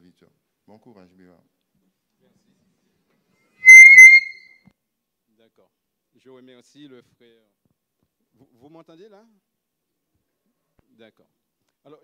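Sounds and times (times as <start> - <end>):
microphone feedback squeal: 3.6 - 4.5.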